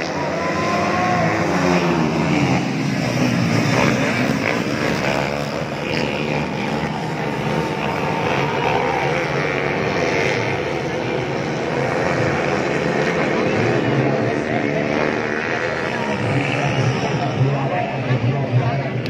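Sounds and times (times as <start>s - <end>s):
dirt bike engines buzzing: 0.0s - 19.0s.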